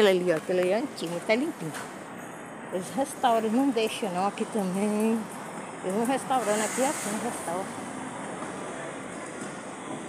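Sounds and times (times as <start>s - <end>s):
distant traffic: 0.0s - 10.0s.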